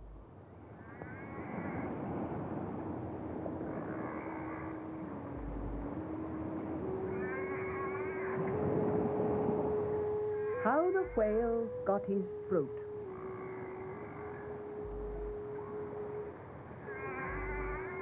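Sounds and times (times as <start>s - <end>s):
short gliding cries: 0.8s - 18.0s
held tone stepping up in pitch: 4.4s - 18.0s.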